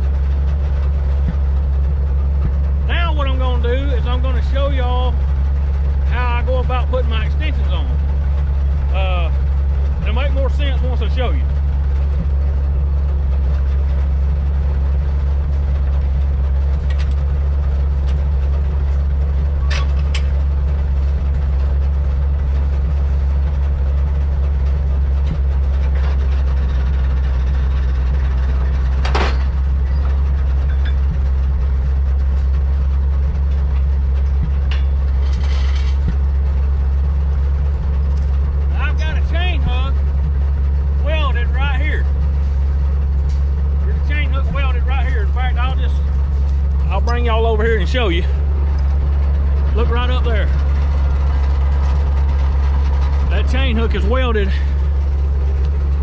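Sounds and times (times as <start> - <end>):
truck engine idling: 0.0 - 56.0.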